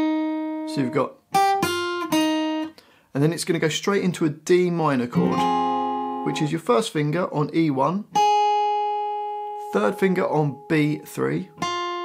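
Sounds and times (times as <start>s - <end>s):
acoustic guitar notes plucked: 0.0s - 2.8s, 5.1s - 12.0s.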